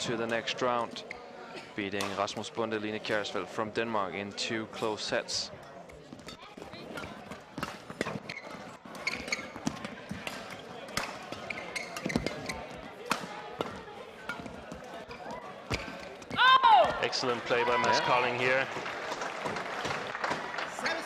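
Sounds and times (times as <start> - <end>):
shoes squeaking on court floor: 5.6 - 17.1
rackets striking shuttlecock: 9.1 - 16.4.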